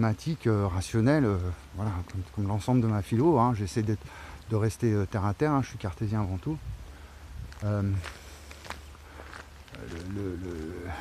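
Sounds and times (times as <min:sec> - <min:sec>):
footsteps on asphalt: 0:07.4 - 0:11.0.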